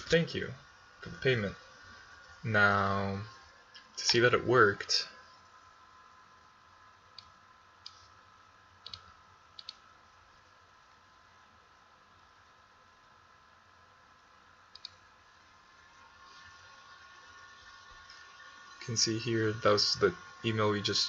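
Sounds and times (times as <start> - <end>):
steady high whine: 0.0 - 21.0.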